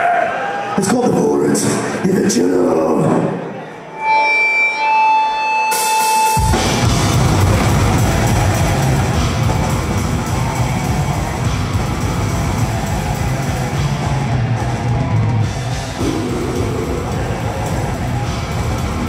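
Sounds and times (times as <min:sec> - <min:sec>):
death metal band playing: 0:05.7 - 0:19.0.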